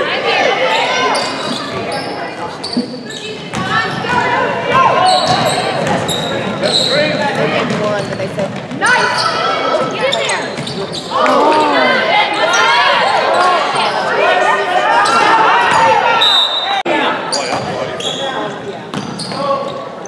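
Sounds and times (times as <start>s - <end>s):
people shouting in a hall: 11.1s - 17.3s.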